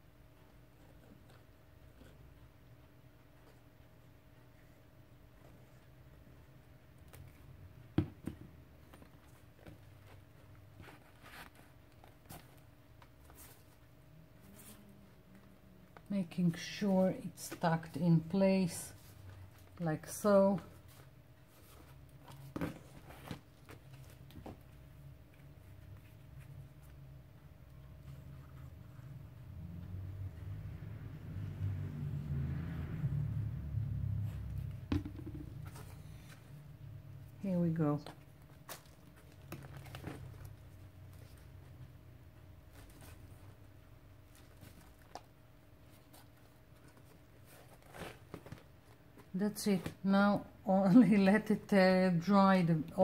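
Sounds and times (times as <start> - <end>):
faint low hum: 0.0 - 53.0.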